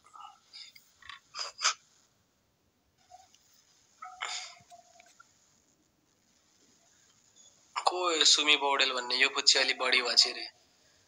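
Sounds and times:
person speaking: 7.8 - 10.5.

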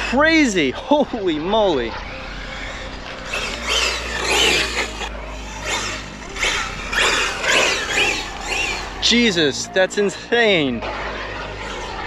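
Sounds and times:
electric motor whining: 2.1 - 9.1.

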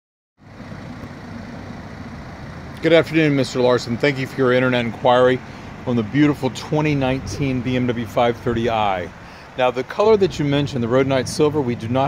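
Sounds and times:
vehicle engine humming: 0.4 - 12.0.

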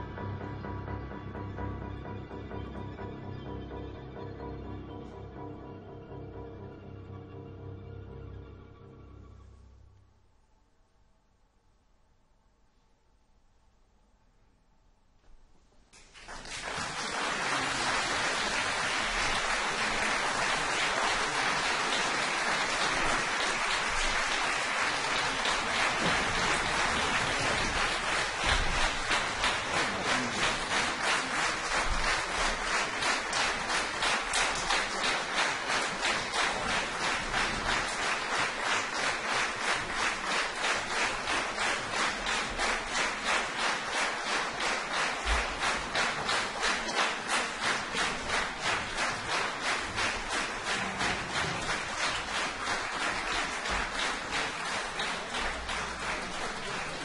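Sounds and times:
rhythmic clapping: 15.9 - 57.0
audience applauding: 16.0 - 57.0.

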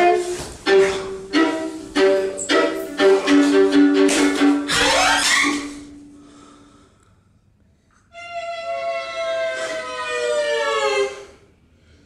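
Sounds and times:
instrumental music with sliding notes: 0.0 - 5.9.

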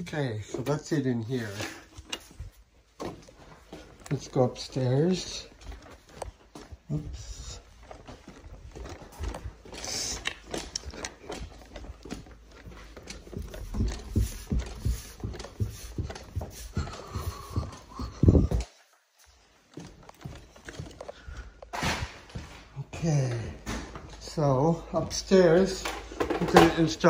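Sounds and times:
footsteps climbing stairs: 0.0 - 27.0.

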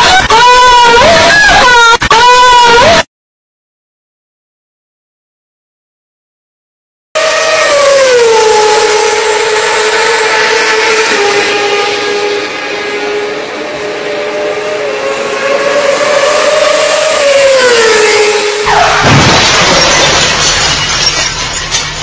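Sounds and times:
motorcycle engine revving: 7.2 - 20.6
sudden loud noise: 14.8 - 22.0.

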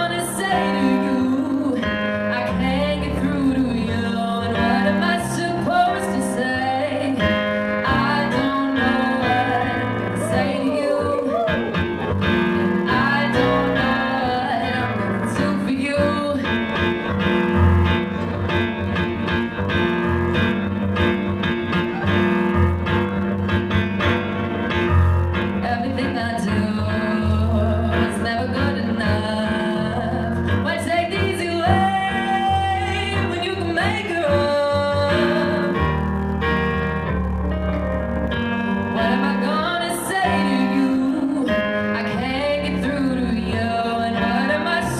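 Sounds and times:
woman singing: 0.0 - 11.8, 12.8 - 17.0, 25.6 - 35.8, 38.9 - 44.9
keyboard chords: 0.0 - 44.9.

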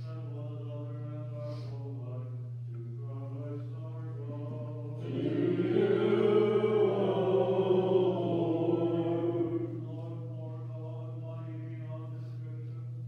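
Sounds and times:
person chanting: 0.0 - 12.8
steady low hum: 0.0 - 13.0
several voices singing: 4.4 - 11.2.

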